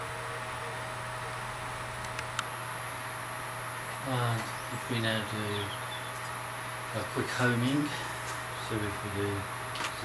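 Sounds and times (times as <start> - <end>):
electrical hum: 0.0 - 10.0
thin high whine: 2.4 - 10.0.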